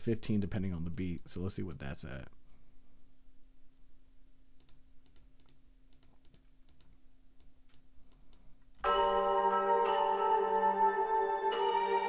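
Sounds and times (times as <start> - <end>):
computer keyboard and mouse clicks: 4.6 - 8.5
beat with bell-like melody: 8.8 - 12.0.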